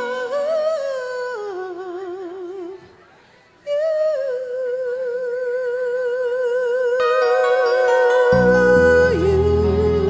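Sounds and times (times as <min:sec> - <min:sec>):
woman singing with vibrato: 0:03.7 - 0:10.0.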